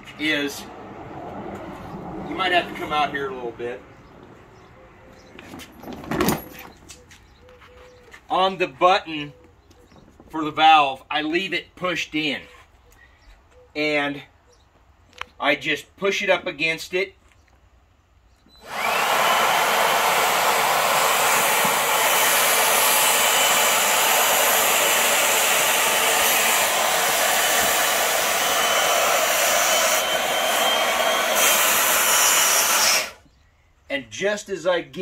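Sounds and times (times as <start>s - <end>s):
leaf blower running: 18.6s - 33.2s.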